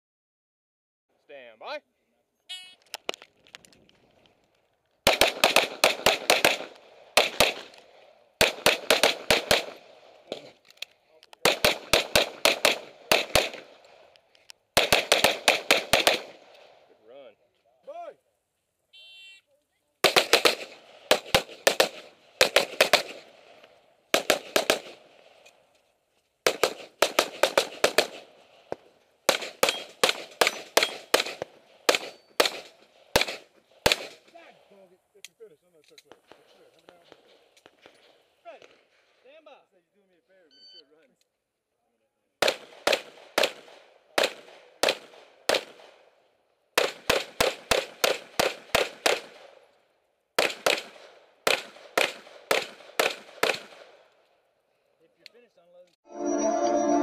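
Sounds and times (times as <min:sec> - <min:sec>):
rapid pistol shots: 0:05.0 - 0:10.5, 0:11.4 - 0:14.1, 0:14.7 - 0:16.7, 0:20.0 - 0:25.4, 0:26.4 - 0:34.2, 0:42.4 - 0:46.1, 0:46.7 - 0:49.6, 0:50.4 - 0:54.0.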